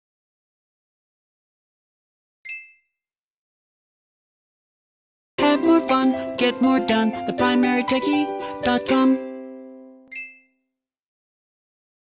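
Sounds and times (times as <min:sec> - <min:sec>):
bright ding sound effect: 0:02.5 - 0:03.0, 0:10.1 - 0:10.6.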